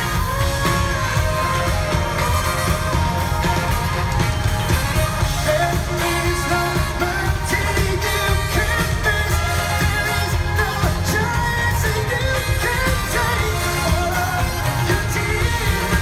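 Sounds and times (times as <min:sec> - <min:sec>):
live pop band: 0:00.0 - 0:16.0
men singing: 0:04.9 - 0:16.0.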